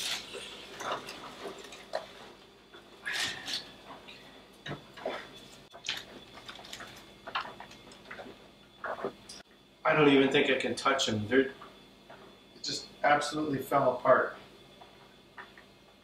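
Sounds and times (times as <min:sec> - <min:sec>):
plastic bag crinkling: 0:05.8 - 0:07.1.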